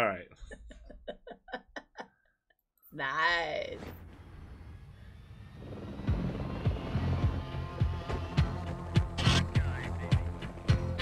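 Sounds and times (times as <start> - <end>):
helicopter drone: 3.9 - 11.0
music: 5.6 - 11.0.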